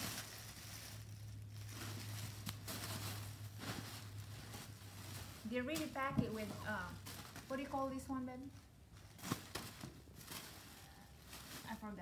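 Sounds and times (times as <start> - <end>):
plastic packaging rustling: 0.0 - 12.0.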